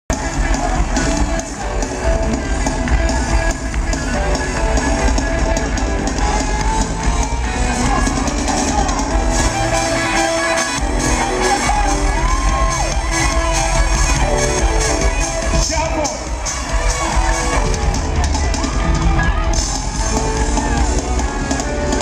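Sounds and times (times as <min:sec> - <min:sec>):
r and b band playing loudly: 0:00.1 - 0:22.0.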